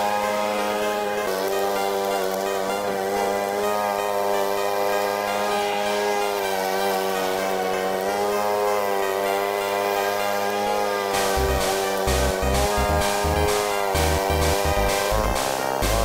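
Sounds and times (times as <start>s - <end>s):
lawn mower engine running: 0.2s - 16.0s.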